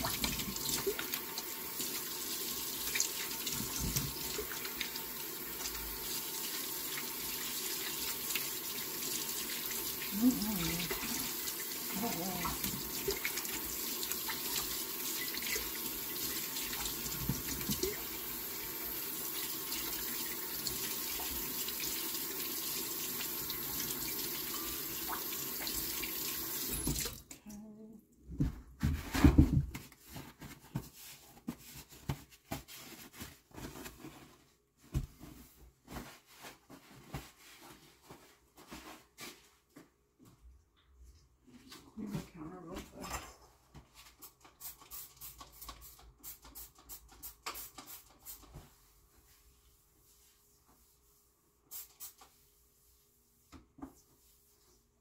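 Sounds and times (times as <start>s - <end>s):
tap water running into sink: 0.0s - 27.3s.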